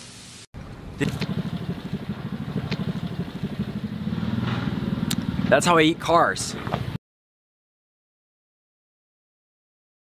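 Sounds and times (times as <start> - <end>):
vehicle engine running: 0.6 - 7.0.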